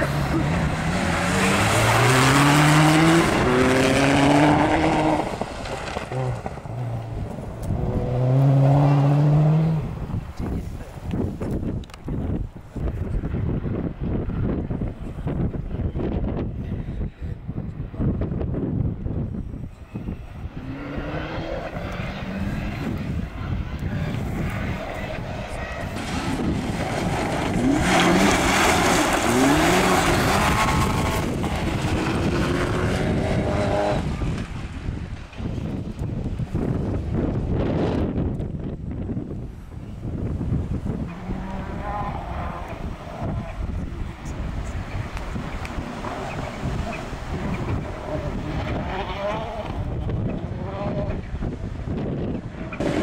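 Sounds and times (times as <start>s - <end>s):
rally car engine revving: 0.0s - 10.1s, 20.5s - 34.6s, 40.8s - 53.0s
car approaching: 0.0s - 16.4s, 19.0s - 53.0s.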